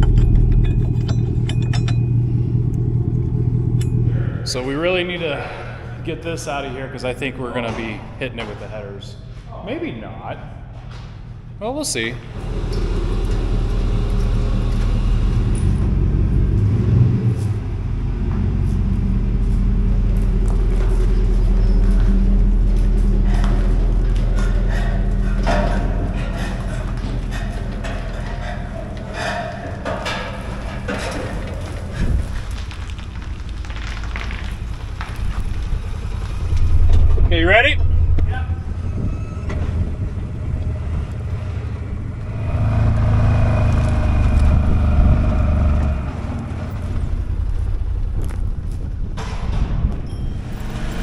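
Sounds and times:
pickup truck engine running: 0.0 - 5.0, 12.3 - 33.8, 39.6 - 49.2.

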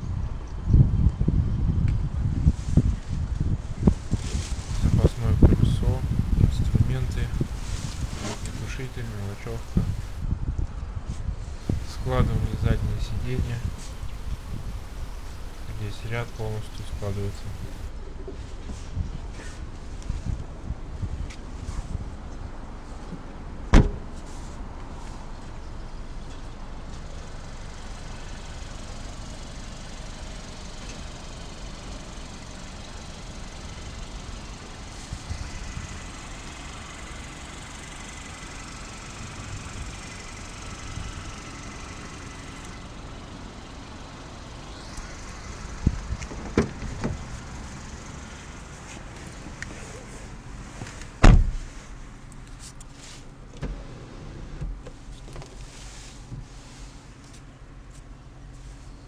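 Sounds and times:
handling noise: 4.4 - 10.2, 11.6 - 17.9
car boot lid thump: 23.7 - 24.0, 51.2 - 51.6
car door knocks: 51.2 - 51.6.

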